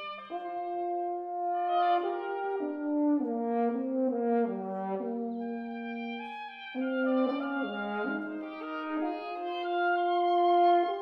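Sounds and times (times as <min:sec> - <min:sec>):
wind quintet playing sustained notes: 0:00.0 - 0:11.0.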